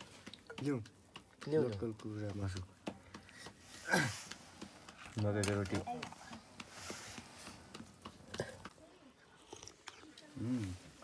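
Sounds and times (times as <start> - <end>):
quiet chewing: 0.0 - 11.0.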